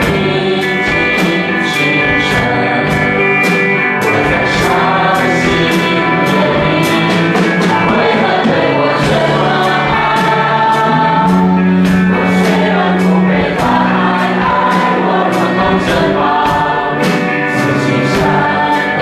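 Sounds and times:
band accompaniment: 0.0 - 19.0
drums steady beat: 0.0 - 19.0
group singing worship song: 0.0 - 19.0.

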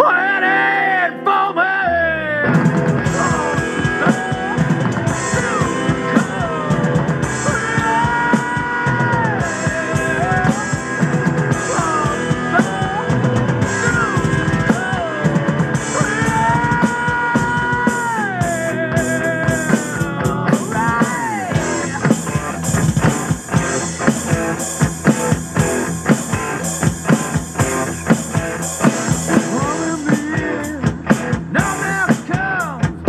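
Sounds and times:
heavy rock song: 0.0 - 33.0
drum kit with cymbals: 2.4 - 33.0.

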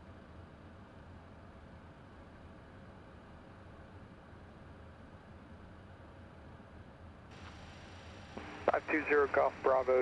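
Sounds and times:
low background noise: 0.0 - 10.0
voice over radio: 8.4 - 10.0.

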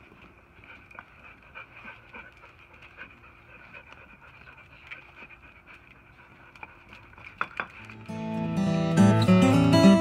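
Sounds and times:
dog panting softly: 0.4 - 8.0.

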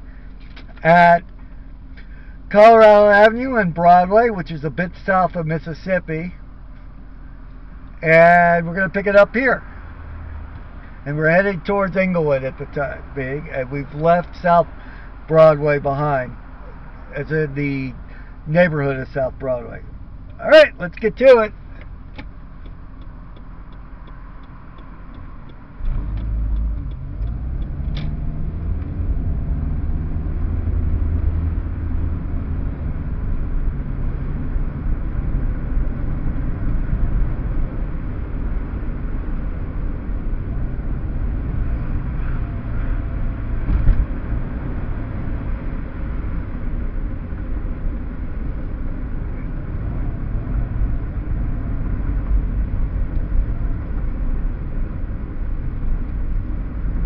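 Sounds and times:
car engine and tyres rumbling: 0.0 - 57.0.

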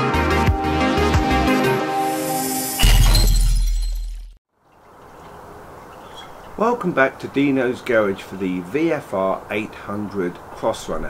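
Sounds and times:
electronic intro music: 0.1 - 2.8
glass shattering with deep boom: 2.7 - 4.4.

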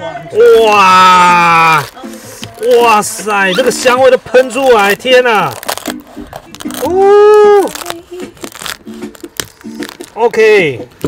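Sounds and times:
quiet background music: 0.0 - 11.0
cleaver crunching roasted skin: 0.8 - 11.0.

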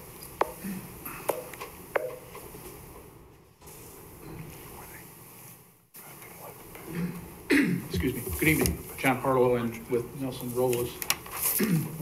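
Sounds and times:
faint rustling of people walking: 0.0 - 12.0.

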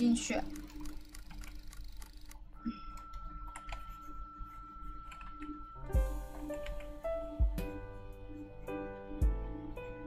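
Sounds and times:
computer keyboard keys tapping: 0.3 - 4.1, 5.0 - 5.6, 6.3 - 7.0
faint steady high tone: 2.6 - 6.5.

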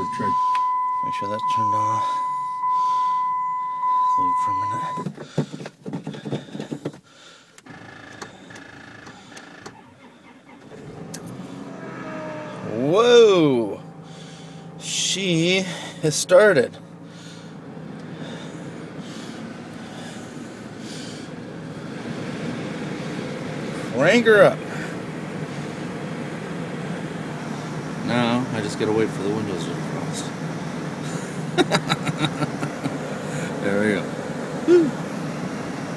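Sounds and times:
van engine idling: 0.0 - 35.9
starter cranking engine: 5.1 - 12.1
engine starting: 7.6 - 12.5.

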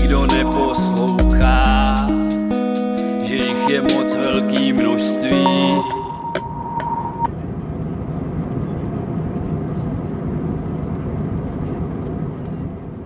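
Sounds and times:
held musical note: 0.0 - 7.3
airliner cabin rumble: 7.0 - 13.0.

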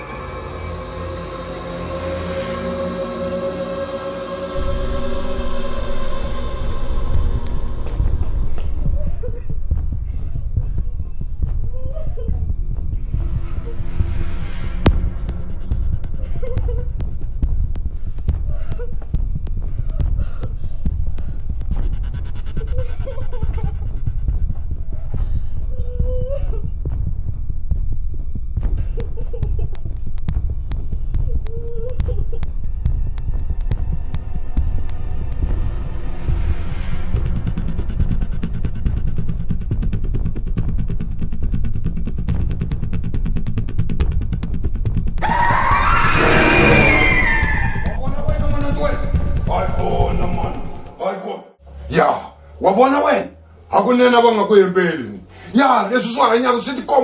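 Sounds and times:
low throbbing rumble: 0.0 - 51.0.

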